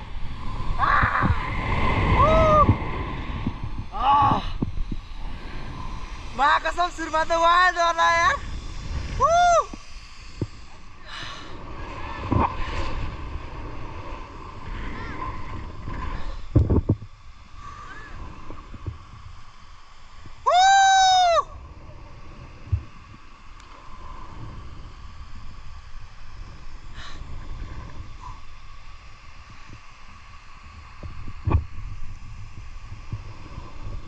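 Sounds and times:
wind buffeting microphone: 0.0 - 17.2.

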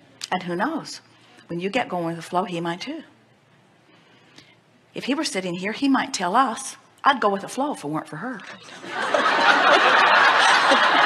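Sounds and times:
audience laughing: 8.6 - 11.0.

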